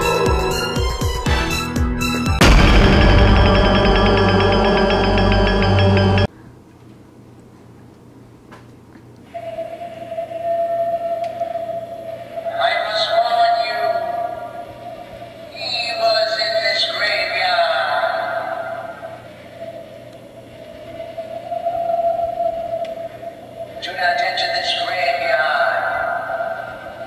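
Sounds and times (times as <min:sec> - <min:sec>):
processed voice-like wail: 0:00.0 - 0:01.2
eerie held tone from speaker: 0:00.0 - 0:01.5, 0:02.4 - 0:06.3, 0:09.2 - 0:27.0.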